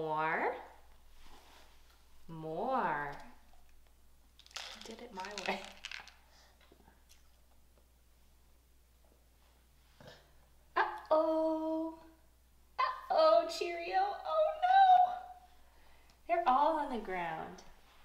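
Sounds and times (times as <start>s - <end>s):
woman singing tones: 10.8s - 12.2s.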